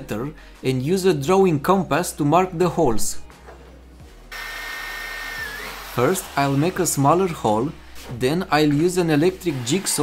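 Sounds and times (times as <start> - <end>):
electric drill whining: 4.3 - 6.4.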